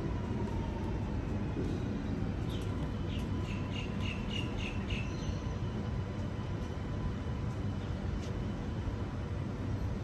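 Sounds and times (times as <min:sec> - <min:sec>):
electric train rumbling: 0:00.0 - 0:10.0.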